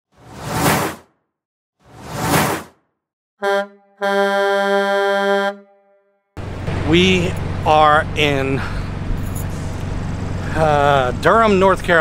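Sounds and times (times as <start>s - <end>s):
whoosh sound effect: 0.2s - 1.1s, 1.9s - 2.8s.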